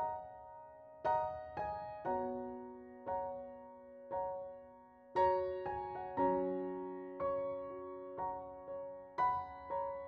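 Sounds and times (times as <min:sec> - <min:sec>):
slow gentle piano music: 0:00.0 - 0:10.0.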